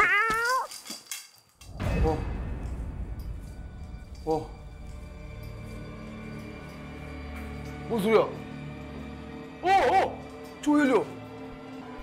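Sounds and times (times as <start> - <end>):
low rumble: 1.6 - 6.8.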